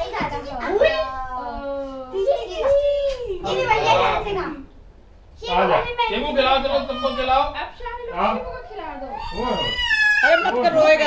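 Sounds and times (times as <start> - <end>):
young children calling out: 6.6 - 7.6, 9.0 - 10.7.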